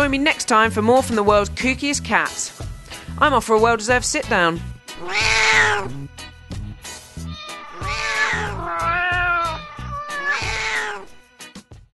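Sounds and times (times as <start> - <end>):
music: 0.0 - 11.9
cat yowling: 5.0 - 6.1, 7.3 - 11.2.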